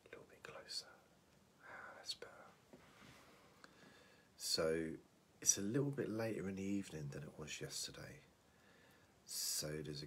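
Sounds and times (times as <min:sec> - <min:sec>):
man whispering: 0:00.0 - 0:02.7, 0:04.4 - 0:08.3, 0:09.2 - 0:10.0.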